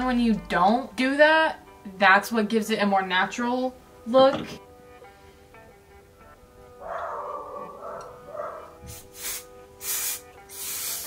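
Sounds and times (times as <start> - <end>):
background music: 0.0 - 11.0
hair spray can hissing: 8.8 - 11.0.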